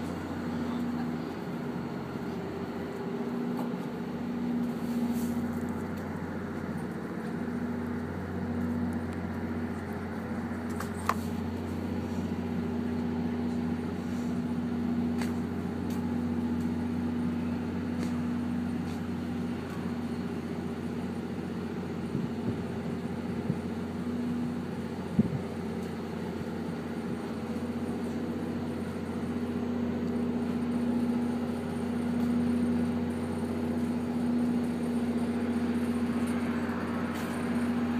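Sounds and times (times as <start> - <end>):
diesel train idling hum: 0.0 - 37.9.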